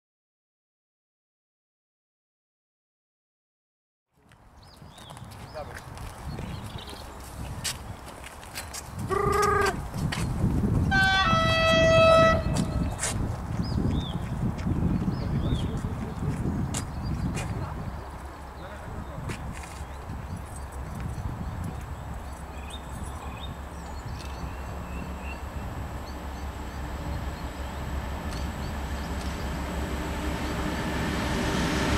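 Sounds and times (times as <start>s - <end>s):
birds chirping: 13.6s - 31.0s
low uneven rumble: 22.0s - 31.9s.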